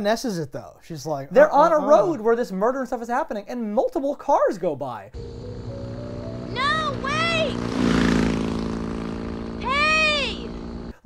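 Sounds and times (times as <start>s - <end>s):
engine running: 5.2s - 11.0s.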